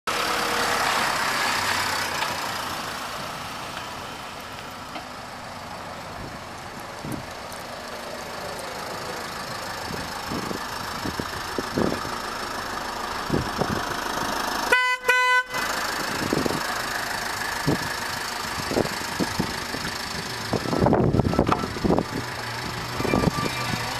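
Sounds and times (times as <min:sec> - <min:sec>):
van horn toots: 0:14.7 - 0:16.4, 0:22.9 - 0:23.9.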